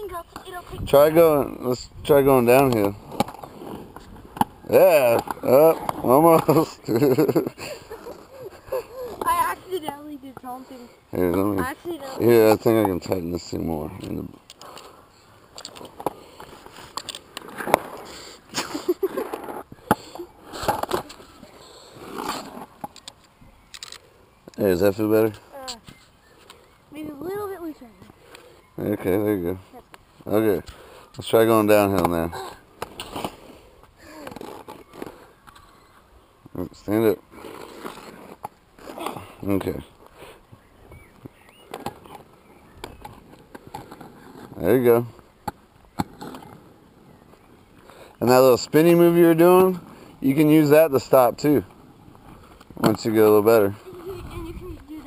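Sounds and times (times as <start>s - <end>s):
skate wheels clicking and knocking: 0.0s - 1.5s, 2.2s - 23.3s, 30.6s - 36.1s, 37.3s - 40.2s, 41.1s - 55.0s
skates rolling on asphalt: 0.0s - 55.0s
skate buckle clicks and strap scuffs: 15.5s - 24.6s, 41.0s - 44.6s, 45.2s - 47.5s.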